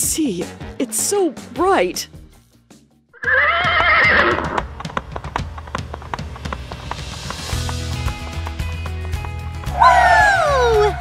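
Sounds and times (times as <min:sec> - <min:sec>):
horse whinnying: 0:03.2 - 0:04.7
hooves clip-clopping: 0:03.2 - 0:11.0.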